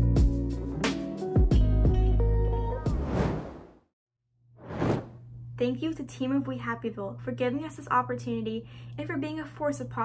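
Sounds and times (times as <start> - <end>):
whoosh effect: 2.9 - 3.8, 4.6 - 5.2
woman speaking: 5.6 - 10.0.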